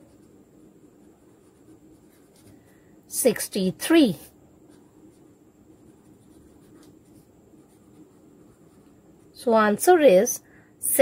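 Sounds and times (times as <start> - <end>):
marker scratching on paper: 0.0 - 2.6, 3.2 - 9.6.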